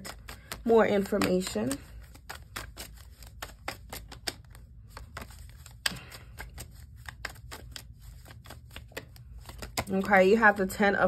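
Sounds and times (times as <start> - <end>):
cards being shuffled: 0.0 - 11.0
low room hum: 0.0 - 11.0.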